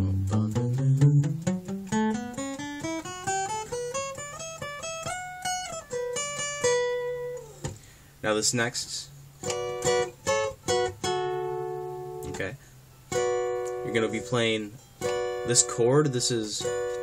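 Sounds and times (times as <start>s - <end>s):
acoustic guitar solo line: 0.0s - 17.0s.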